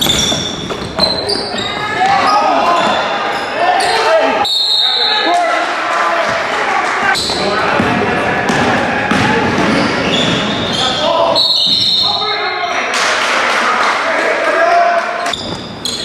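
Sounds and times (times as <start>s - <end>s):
basketball bouncing on court: 0.0s - 3.0s, 7.2s - 10.8s
sneakers squeaking: 0.0s - 5.4s, 7.1s - 12.9s, 15.2s - 16.0s
people shouting: 1.1s - 12.9s.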